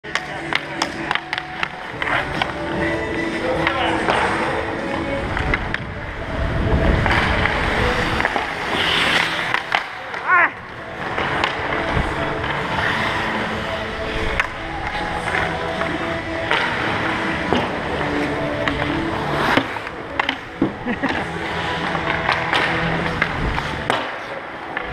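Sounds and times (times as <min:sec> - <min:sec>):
background music: 0:00.0 - 0:24.9
sticks clacking on puck: 0:00.1 - 0:05.9, 0:07.0 - 0:10.4, 0:11.0 - 0:24.9
skates scraping on ice: 0:00.1 - 0:24.9
voices: 0:00.1 - 0:24.9.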